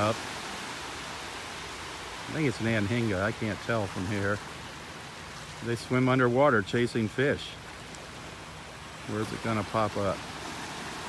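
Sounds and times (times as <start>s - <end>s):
beach ambience hiss: 0.0s - 11.0s.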